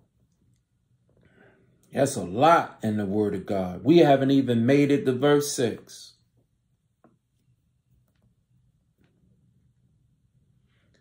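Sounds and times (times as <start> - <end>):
man speaking: 1.9 - 6.2.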